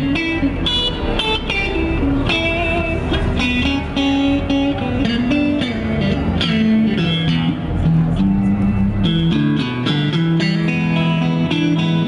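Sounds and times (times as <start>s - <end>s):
electric blues guitar: 0.0s - 12.0s.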